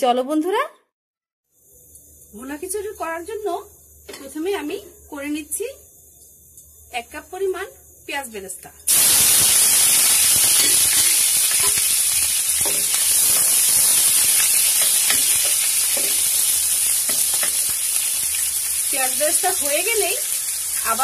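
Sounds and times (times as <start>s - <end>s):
onions sizzling in hot oil: 1.5s - 21.0s
spatula stirring: 10.6s - 17.7s.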